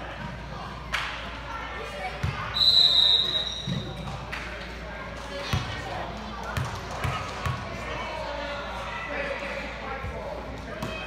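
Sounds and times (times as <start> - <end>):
spectator chatter: 0.0 - 11.0
referee's whistle blast: 2.6 - 3.7.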